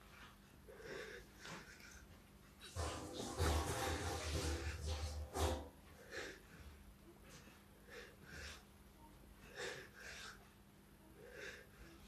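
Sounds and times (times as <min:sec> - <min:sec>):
person breathing hard: 0:00.6 - 0:12.0.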